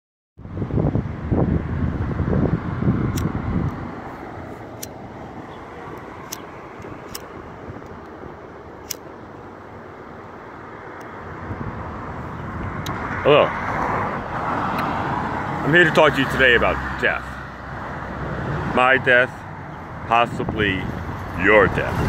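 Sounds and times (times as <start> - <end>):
outdoor street background: 0.4 - 22.0
pocket lighter clicks: 3.1 - 3.3, 6.0 - 6.5.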